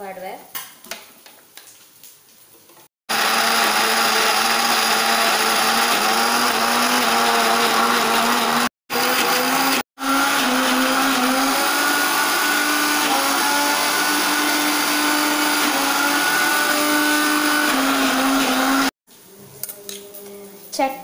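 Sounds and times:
mixer grinder motor whine: 3.1 - 19.0.

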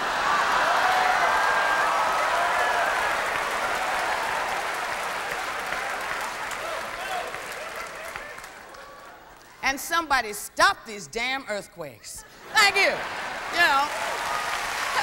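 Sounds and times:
audience applauding: 0.0 - 9.5, 12.6 - 15.0.

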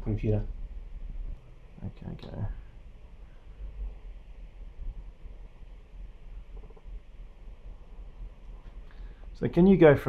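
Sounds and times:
low background rumble: 0.0 - 10.0.

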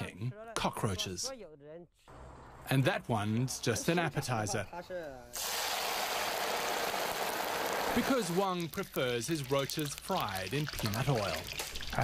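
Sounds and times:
oil sizzling in a wok: 5.4 - 12.0.

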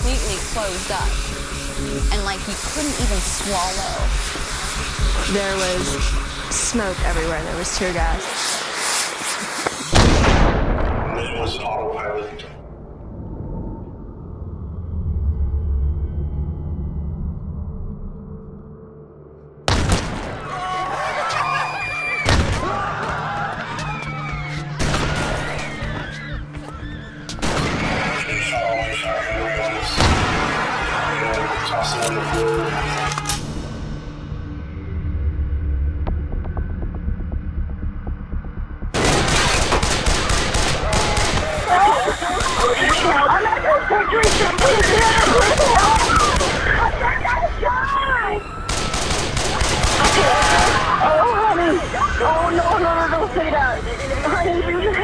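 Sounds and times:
low music: 0.0 - 8.3, 15.0 - 41.5
people screaming: 20.3 - 33.4, 40.4 - 55.0
rapid gunfire: 39.0 - 41.7, 44.2 - 46.8, 48.7 - 51.0.

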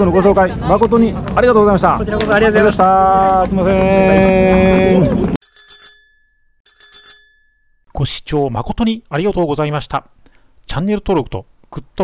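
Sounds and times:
small metal bell ringing: 5.4 - 7.9
voice: 8.0 - 10.1, 10.7 - 12.0.

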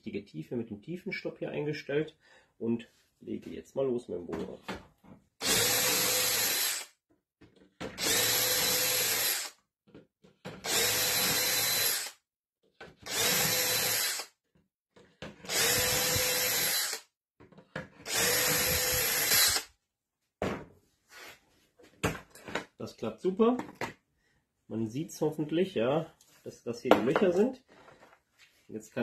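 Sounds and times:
cordless drill boring holes: 5.4 - 6.9, 7.9 - 9.6, 10.6 - 12.2, 13.0 - 14.3, 15.4 - 17.1, 18.0 - 19.7.

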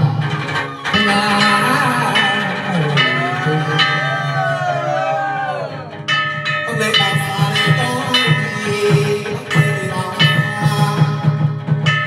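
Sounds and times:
ornamented sung melody: 0.0 - 12.0
plucked lute: 0.0 - 12.0.

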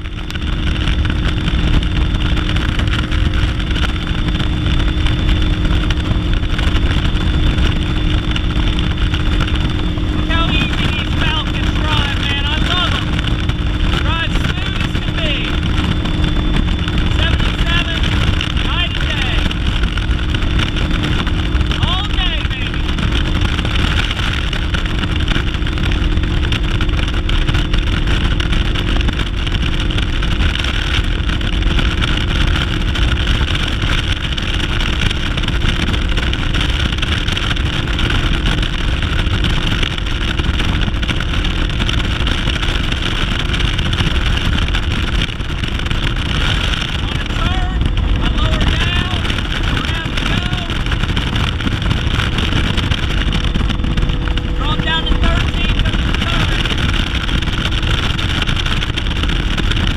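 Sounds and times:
outboard motor at full throttle: 0.0 - 59.9
wind rushing over microphone: 0.0 - 59.9.

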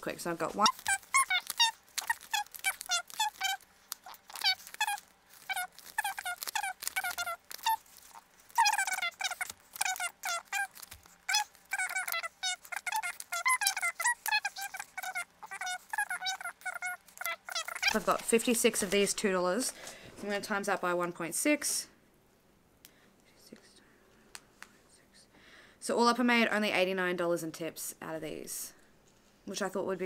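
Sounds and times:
sped-up squeaky voice chatter: 0.5 - 19.0.

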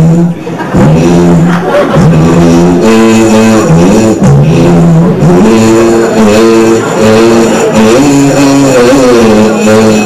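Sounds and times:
man singing slow melody: 0.0 - 10.0.

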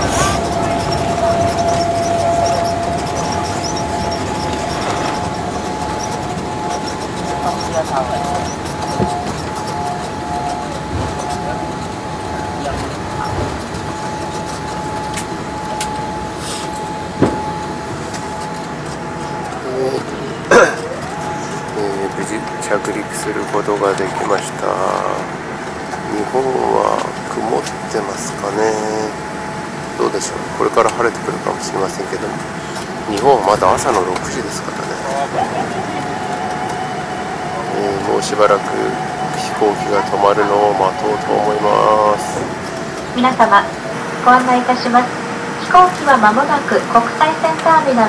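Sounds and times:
jet engines whining: 0.0 - 48.0.

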